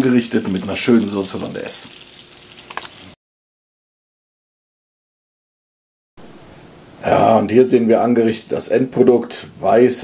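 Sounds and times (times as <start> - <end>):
food sizzling in a frying pan: 0.0 - 3.2.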